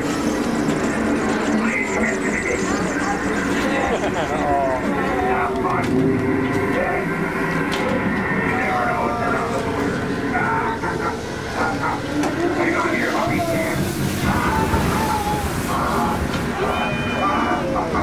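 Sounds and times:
dense background noise: 0:00.0 - 0:18.0
indistinct crowd voices: 0:00.0 - 0:18.0.

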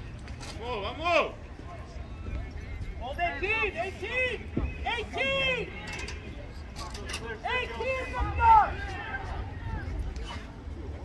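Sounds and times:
people shouting calls: 0:02.4 - 0:06.3, 0:07.0 - 0:10.0.

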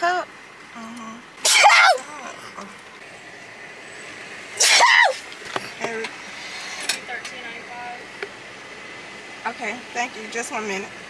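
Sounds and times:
person sneezing: 0:01.4 - 0:02.4, 0:04.6 - 0:05.2.

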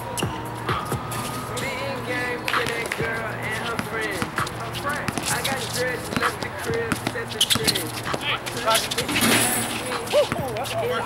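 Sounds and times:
hip-hop beat: 0:00.0 - 0:11.0
basketball bouncing on concrete: 0:02.5 - 0:08.4.

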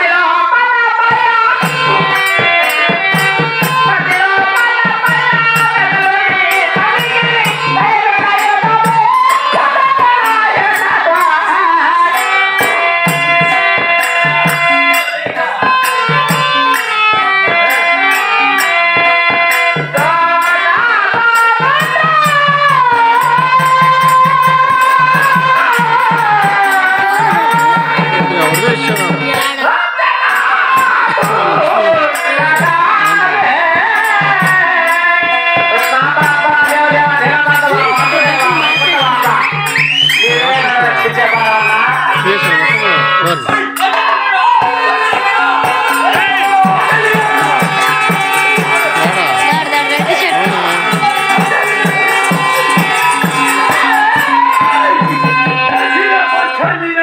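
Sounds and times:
harmonium: 0:00.0 - 0:57.0
person singing: 0:00.0 - 0:57.0
jingling percussion: 0:00.9 - 0:57.0
hand drum beat: 0:01.1 - 0:56.2
harmonium sustained chords: 0:45.0 - 0:56.6.

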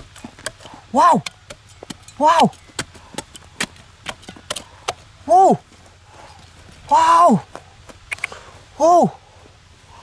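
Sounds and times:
hand shovel chopping stony soil: 0:00.0 - 0:05.1
loose dirt falling: 0:00.0 - 0:08.4.

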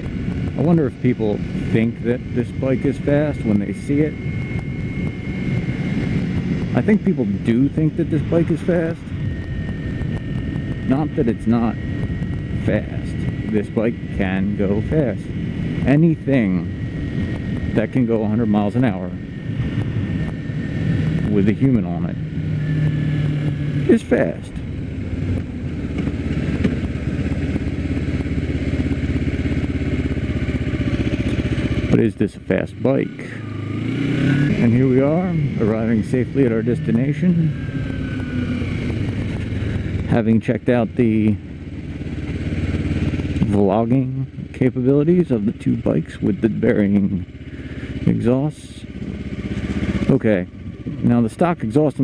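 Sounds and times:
thin high whine: 0:00.0 - 0:48.6
wind rushing over microphone: 0:00.0 - 0:51.1
motorcycle engine running: 0:00.0 - 0:52.0.

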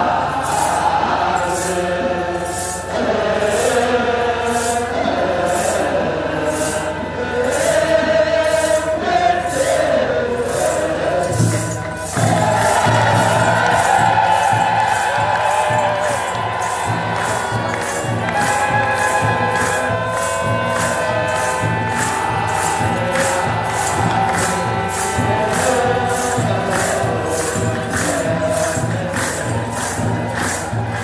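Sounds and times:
clergy chanting in unison: 0:00.0 - 0:31.0
steady drum beats: 0:00.0 - 0:31.0
sistrums jingling: 0:00.1 - 0:31.0.

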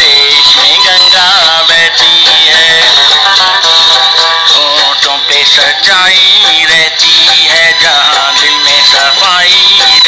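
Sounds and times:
man singing loudly: 0:00.0 - 0:10.0.

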